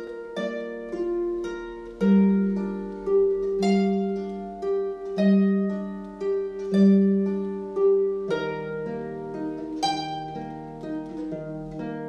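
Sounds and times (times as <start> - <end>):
harp plucked notes: 0.0 - 12.0.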